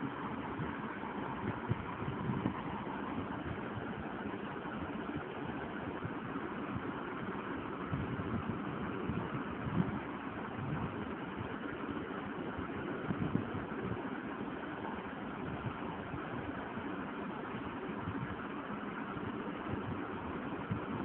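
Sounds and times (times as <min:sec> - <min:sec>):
low rumble with hiss: 0:00.0 - 0:21.0.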